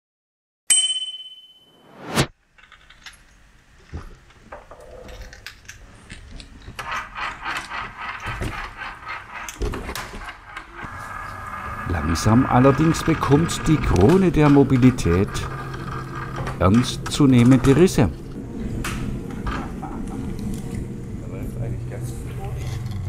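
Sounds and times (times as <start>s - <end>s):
sharp metallic ding: 0.7s - 2.0s
whoosh: 1.8s - 2.3s.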